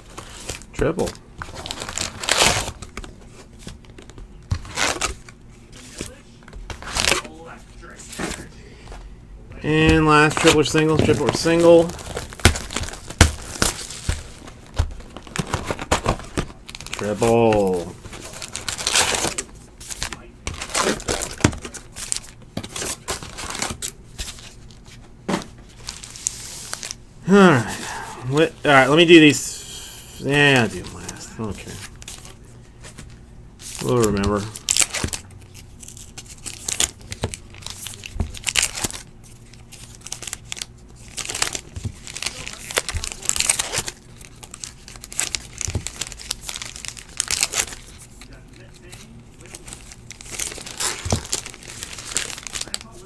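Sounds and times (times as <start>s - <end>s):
foil card packs crinkling: 0.0s - 9.0s, 9.6s - 29.6s, 30.2s - 53.0s
voice: 27.3s - 31.8s.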